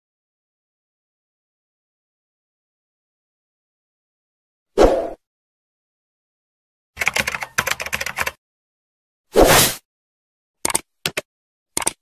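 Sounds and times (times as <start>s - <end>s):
computer keyboard key clicks: 7.0s - 8.4s, 10.6s - 11.2s, 11.8s - 12.0s.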